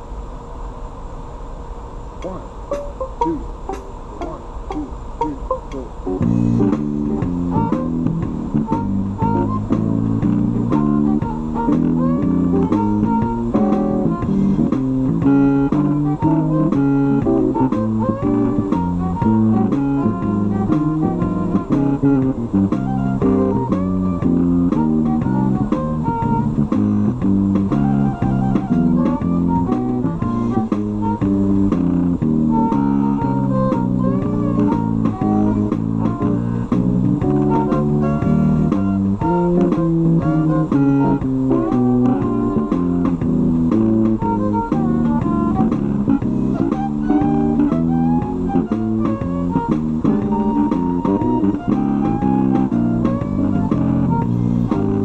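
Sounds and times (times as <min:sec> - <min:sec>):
bowed violin playing blues: 0:02.2 - 0:55.0
guitar and bass accompaniment: 0:02.2 - 0:55.0.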